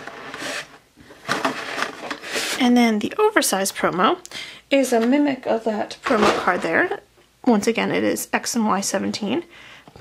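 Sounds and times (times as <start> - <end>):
plastic insert rustling and scraping: 0.0 - 3.0, 6.0 - 6.9.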